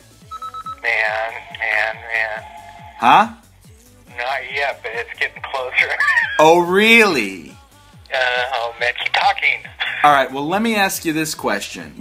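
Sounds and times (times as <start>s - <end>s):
person speaking over telephone: 0.7s - 3.4s, 4.1s - 6.6s, 8.1s - 10.2s.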